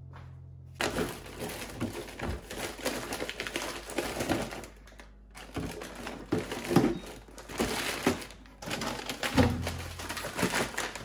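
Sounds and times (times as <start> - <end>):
frozen food packages crinkling: 0.8 - 11.0.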